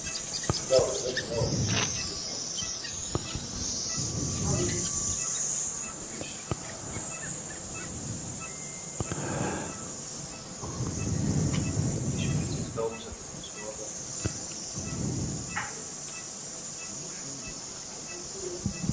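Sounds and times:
high-pitched hiss: 0.0 - 18.9.

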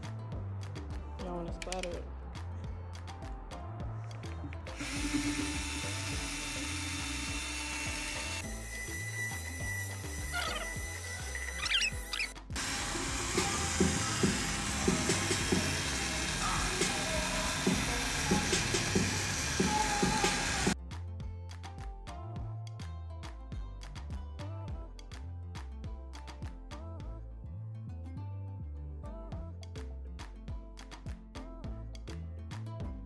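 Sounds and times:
background music: 0.0 - 33.0
cordless drill mixing paint: 4.7 - 20.8.

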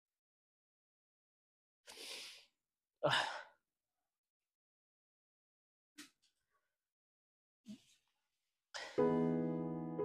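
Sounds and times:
man sighing: 3.0 - 3.5.

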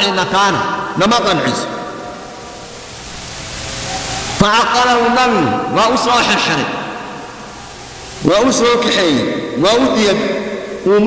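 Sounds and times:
faint hum: 0.0 - 11.0
steady hiss: 0.0 - 11.0.

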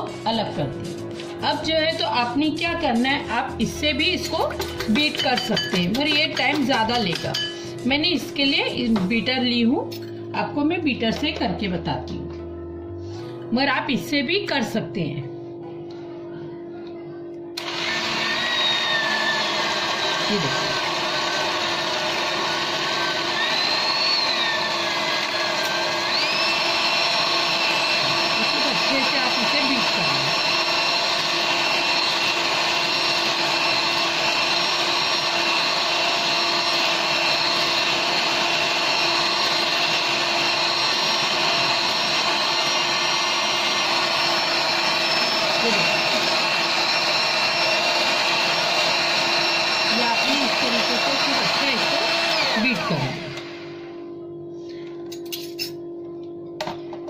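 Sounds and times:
electric hand mixer whipping: 4.1 - 7.9, 17.6 - 54.0.

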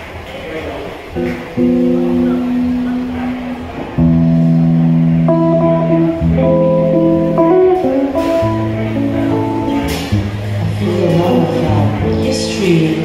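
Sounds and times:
amplified electric guitar chords: 1.1 - 13.0.

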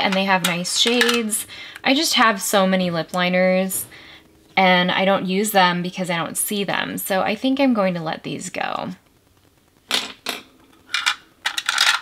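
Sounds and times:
pencils clicking against plastic: 0.0 - 1.2, 10.9 - 12.0.

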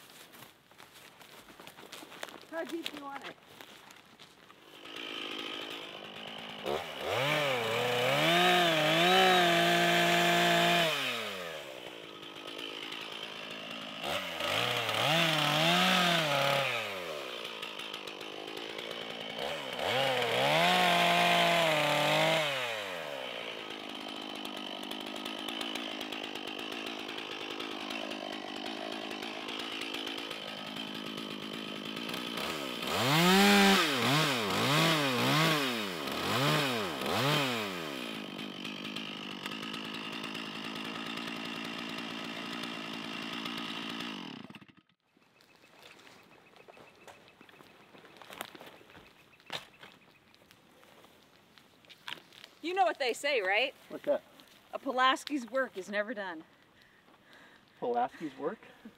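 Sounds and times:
chainsaw cutting: 1.8 - 50.2, 51.9 - 58.9.

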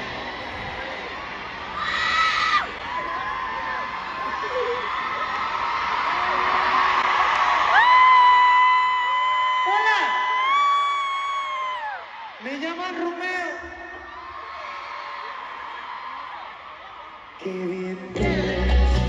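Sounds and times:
crowd cheering and screaming: 0.0 - 19.0.

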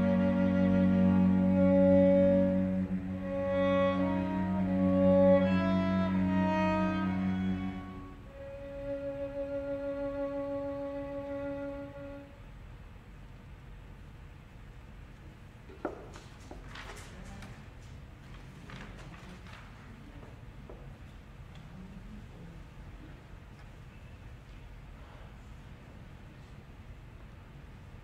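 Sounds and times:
cello low note: 0.0 - 12.4
violin melody: 0.0 - 12.4.

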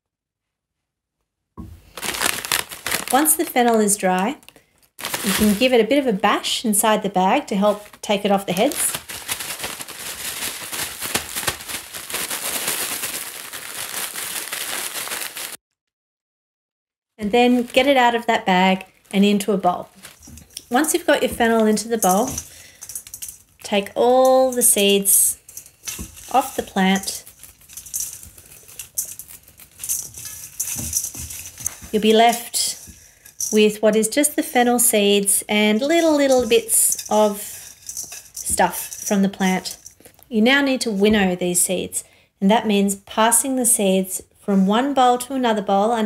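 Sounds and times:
paper bag crinkling: 1.8 - 5.8, 7.6 - 15.6, 17.2 - 33.7, 35.2 - 40.2
seed heads crackling: 1.8 - 15.6, 17.2 - 41.6.

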